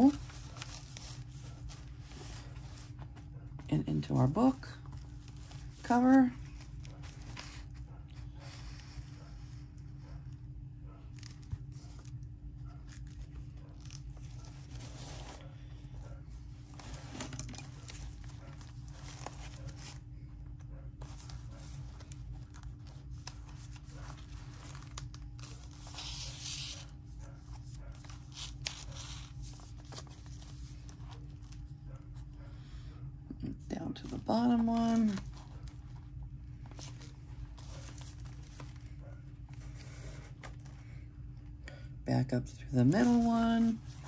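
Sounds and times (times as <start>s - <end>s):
paper rustling: 0.0s - 3.7s, 4.8s - 10.0s, 11.1s - 31.7s, 34.0s - 41.1s
steady low hum: 0.0s - 44.0s.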